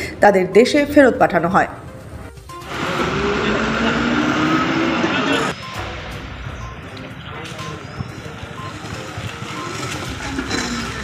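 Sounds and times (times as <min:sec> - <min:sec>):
electric cart driving past: 0:02.6 - 0:11.0
short high warning beep: 0:05.5 - 0:05.9, 0:07.6 - 0:11.0.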